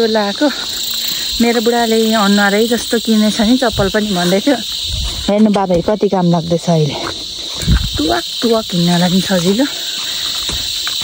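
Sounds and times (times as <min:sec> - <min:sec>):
woman talking: 0:00.0 - 0:07.2, 0:07.9 - 0:09.9
insect chorus: 0:00.0 - 0:11.0.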